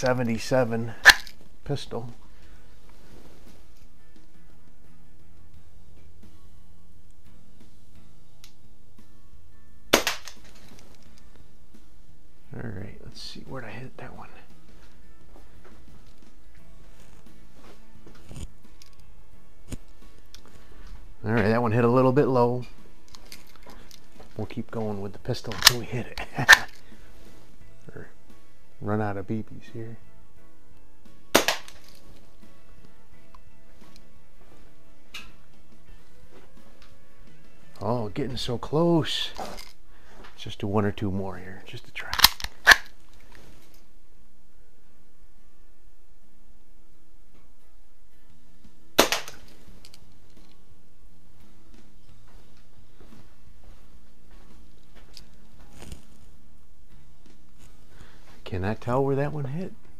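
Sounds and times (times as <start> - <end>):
pistol shot crack: 9.9 - 10.4, 31.3 - 31.8, 49.0 - 49.5.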